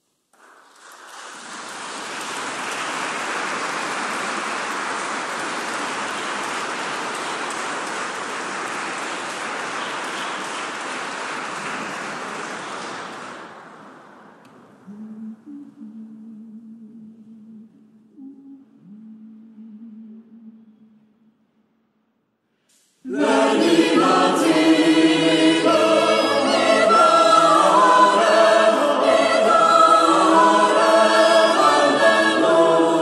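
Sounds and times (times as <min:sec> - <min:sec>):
audience applauding: 0:00.3 - 0:14.4.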